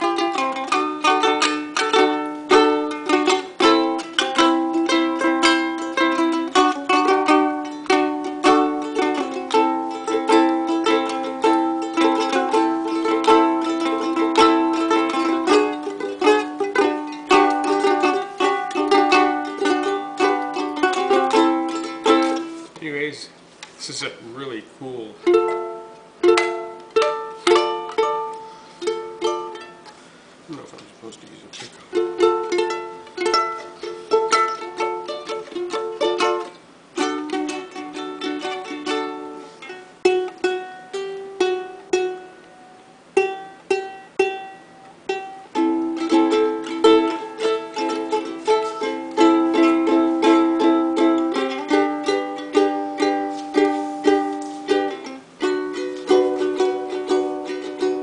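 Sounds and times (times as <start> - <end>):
ukulele strumming chords: 0.0 - 30.7, 31.3 - 58.0.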